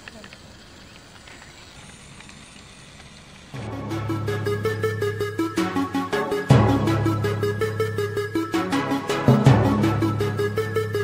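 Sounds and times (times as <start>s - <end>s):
faint crackle with light ticks: 0.0s - 3.6s
robot wheels rolling on pavement: 0.0s - 3.7s.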